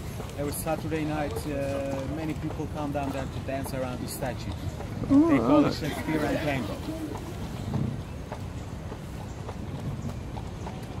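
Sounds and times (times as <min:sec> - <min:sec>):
horse hooves clip-clopping: 0:00.0 - 0:11.0.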